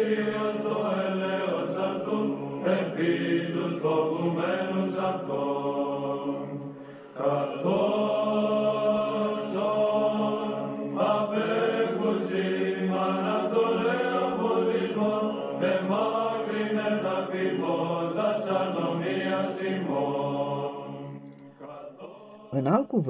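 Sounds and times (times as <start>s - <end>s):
voices chanting: 0.0s - 23.0s.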